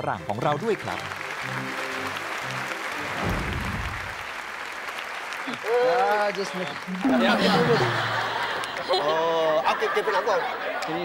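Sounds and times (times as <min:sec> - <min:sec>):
studio audience applauding: 0:00.0 - 0:11.0.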